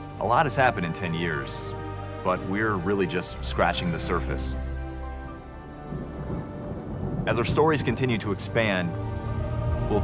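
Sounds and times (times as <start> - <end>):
held musical chord: 0.0 - 10.0
thunder rumbling: 5.6 - 10.0
rain: 5.7 - 10.0.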